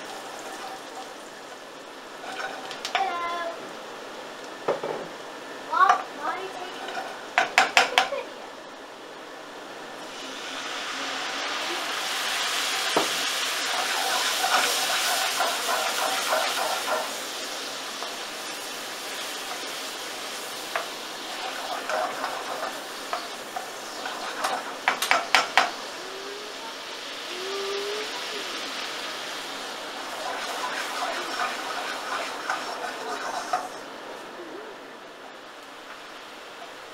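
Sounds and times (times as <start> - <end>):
wooden spoon scraping a pan: 0.0 - 1.2, 2.2 - 3.0, 6.6 - 7.9, 12.9 - 17.4, 18.0 - 25.8, 30.0 - 33.9
onion sizzling in a pan: 0.0 - 36.9.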